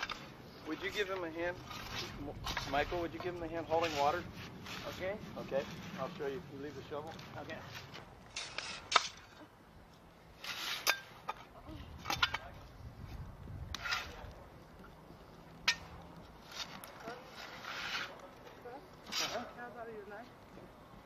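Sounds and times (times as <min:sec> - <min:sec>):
shovel scraping and scooping dirt: 0:00.0 - 0:06.4, 0:07.0 - 0:09.5, 0:10.3 - 0:12.5, 0:13.7 - 0:14.4, 0:15.7 - 0:19.6.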